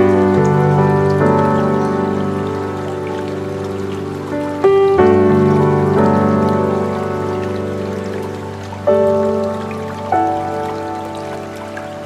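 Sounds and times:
slow ambient piano music: 0.0 - 12.0
stream water flowing: 0.0 - 12.0.

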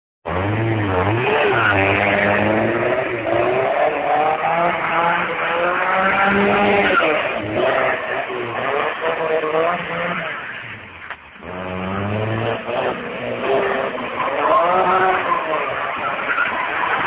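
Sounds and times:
car engine running hard: 0.3 - 17.0
car tyres squealing: 0.4 - 17.0.

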